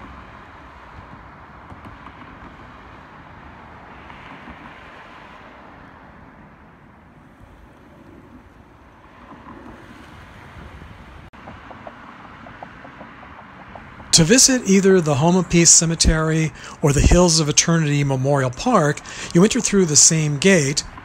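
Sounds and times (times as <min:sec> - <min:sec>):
road traffic hiss: 0:00.0 - 0:21.0
wind rumbling on microphone: 0:07.6 - 0:11.6.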